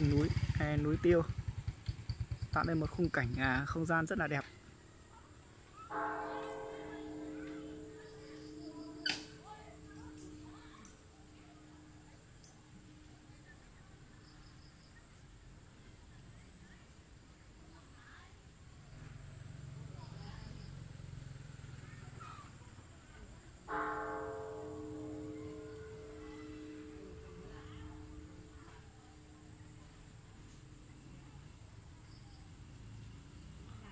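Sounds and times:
temple bell ringing: 5.8 - 14.4, 23.7 - 29.6.

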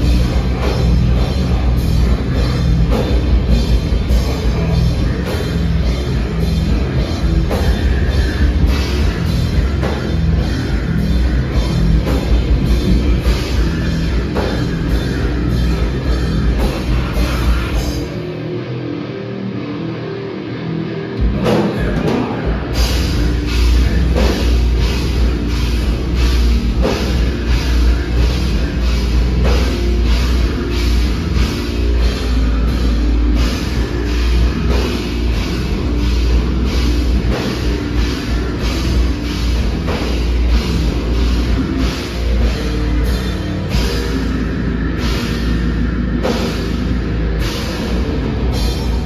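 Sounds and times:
live rock band playing: 0.0 - 49.0.

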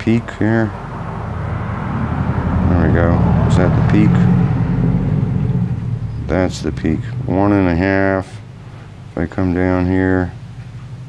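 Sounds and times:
passing vehicle engine rumble: 0.0 - 11.0.

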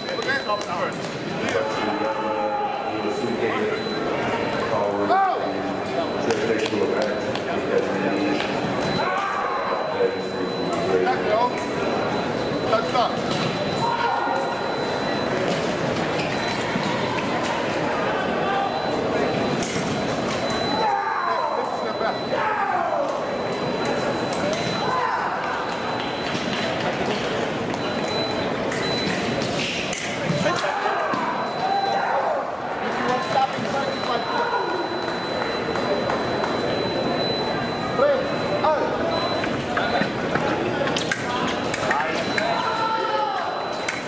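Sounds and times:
voices echoing in a hall: 0.0 - 44.0.

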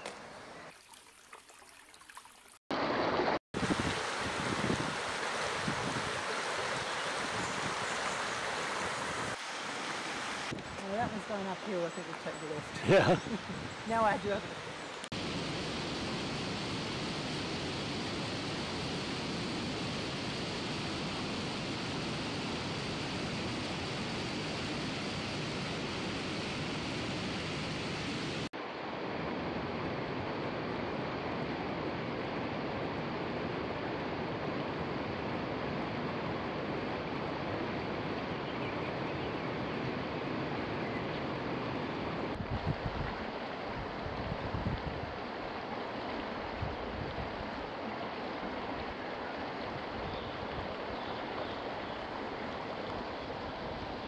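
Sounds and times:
stream running over stones: 0.0 - 15.2, 42.8 - 54.0.

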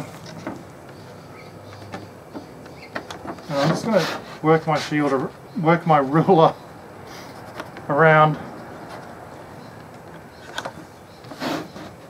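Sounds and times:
ruler and pencil scraping plywood: 11.3 - 12.0.

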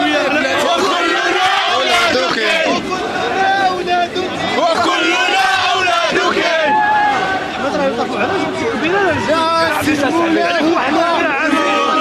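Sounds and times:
crowd shouting slogans: 0.0 - 12.0.

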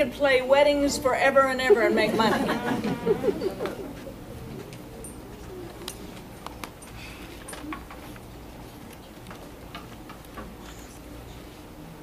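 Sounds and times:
faint clicks and rustles: 3.6 - 11.8.

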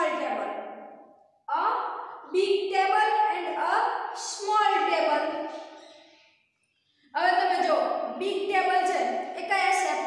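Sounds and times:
woman speaking: 0.0 - 0.8, 1.5 - 5.6, 7.2 - 10.0.

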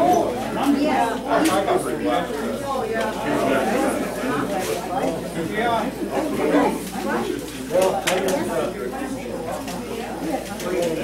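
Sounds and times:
indistinct background talk: 0.0 - 11.0.

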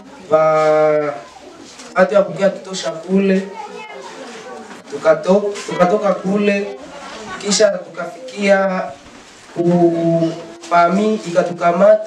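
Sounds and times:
young man speaking into microphone: 0.0 - 1.3, 1.9 - 4.1, 4.9 - 9.0, 9.6 - 12.0.

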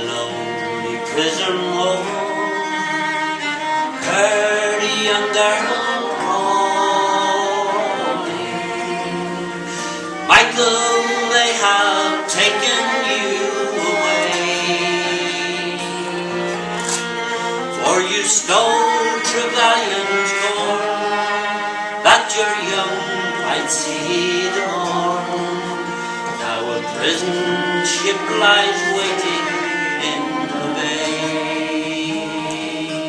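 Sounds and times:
acoustic guitar accompaniment: 0.0 - 33.0
fiddle melody: 0.0 - 33.0
person singing: 0.0 - 33.0.

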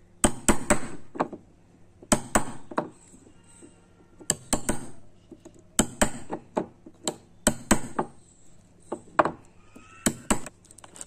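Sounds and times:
chisel struck into wood: 0.2 - 1.4, 2.1 - 2.9, 4.3 - 5.0, 5.8 - 8.2.

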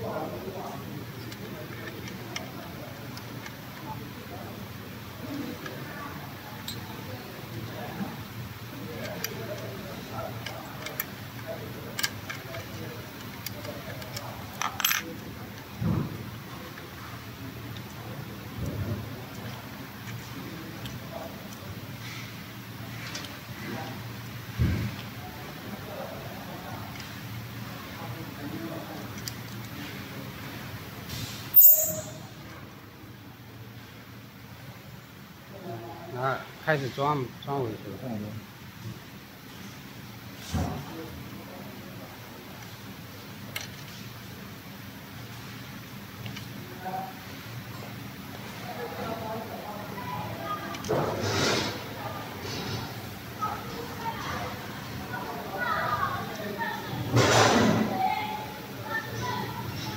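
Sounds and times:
low workshop hum: 0.0 - 59.9.

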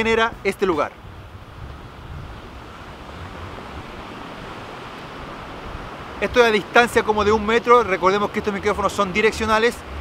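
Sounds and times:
ocean waves washing on beach: 0.0 - 10.0
wind rumble on microphone: 0.0 - 10.0.

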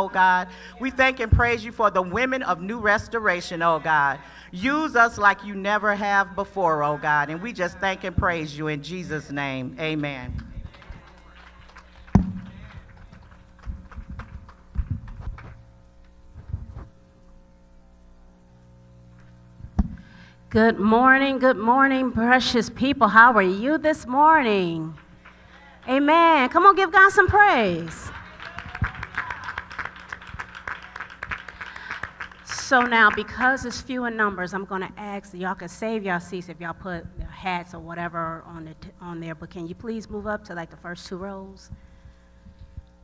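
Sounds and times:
congregation clapping: 10.0 - 15.6, 24.9 - 26.5, 27.5 - 33.5.

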